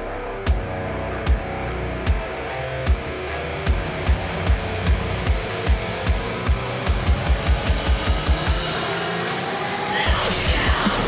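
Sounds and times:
electric guitar: 0.0 - 11.0
rock drum kit: 0.0 - 11.0.

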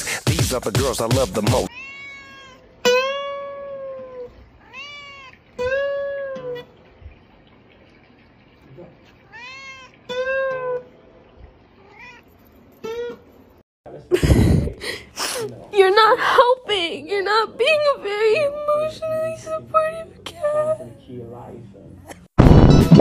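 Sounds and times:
cat meowing: 1.7 - 6.6, 9.3 - 10.8, 11.8 - 12.3.

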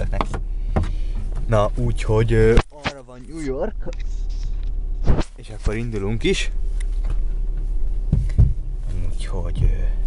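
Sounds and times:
dull thumps: 0.0 - 1.7, 6.9 - 10.0
car interior rumble: 0.0 - 10.0.

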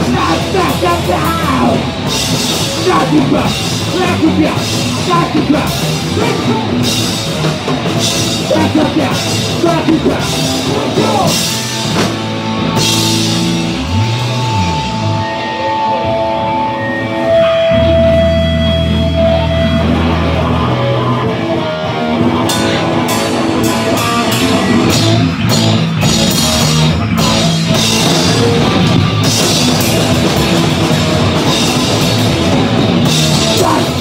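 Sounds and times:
drums with cymbal hits: 0.0 - 15.5, 22.4 - 34.0
ringing electric guitar notes: 10.2 - 34.0.

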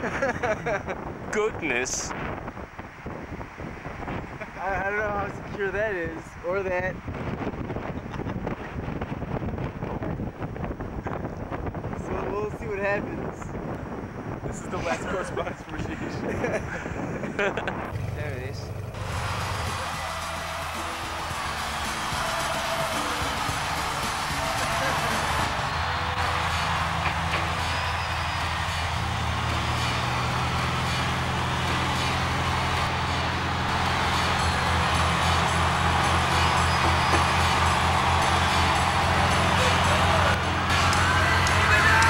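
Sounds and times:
propeller plane engine running: 16.7 - 42.0
band music: 19.0 - 42.0.

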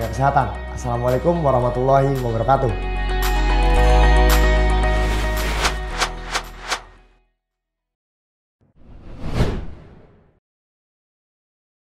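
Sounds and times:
whoosh transition effect: 5.0 - 6.8.

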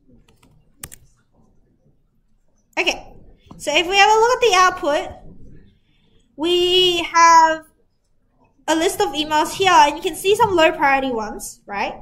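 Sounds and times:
keyboard typing: 0.2 - 1.1.

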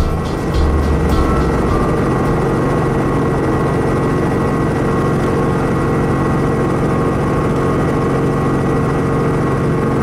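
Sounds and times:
helicopter engine and rotor: 0.3 - 10.0.

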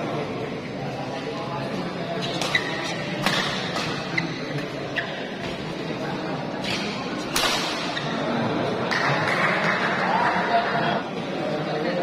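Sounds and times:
crowd noise in a large hall: 0.0 - 12.0
badminton racket striking shuttlecock: 2.3 - 4.1, 6.6 - 8.0.

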